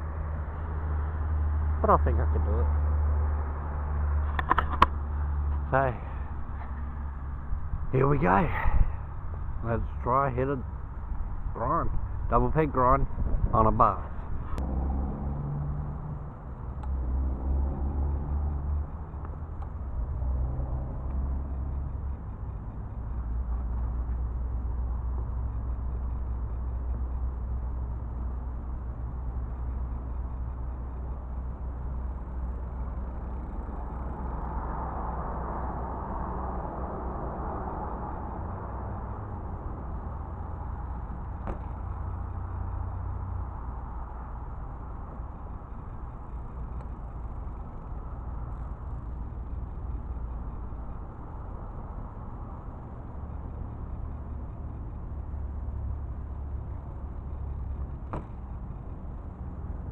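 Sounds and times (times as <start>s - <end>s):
low outdoor rumble: 0.0s - 59.9s.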